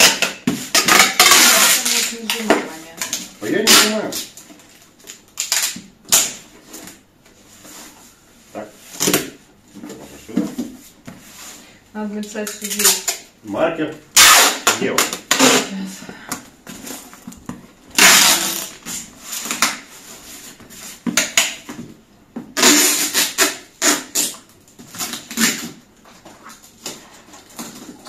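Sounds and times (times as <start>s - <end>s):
packing tape pulled off roll: 0.0s - 2.4s, 3.0s - 4.4s, 5.1s - 7.0s, 14.2s - 15.7s, 17.9s - 19.9s, 22.6s - 25.8s.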